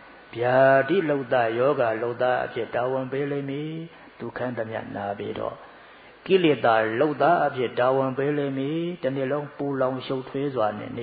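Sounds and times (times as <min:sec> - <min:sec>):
monk chanting: 0:00.3 - 0:05.6.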